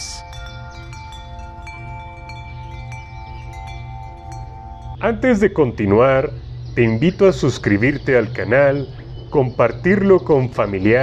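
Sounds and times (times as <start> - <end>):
wind chimes tinkling: 0.0 - 11.0.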